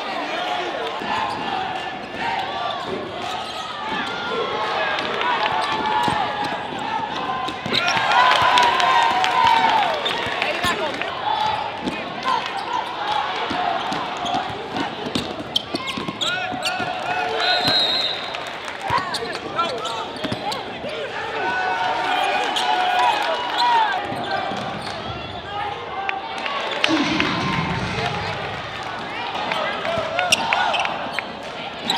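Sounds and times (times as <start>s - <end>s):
crowd talking and calling out: 18.7s - 31.9s.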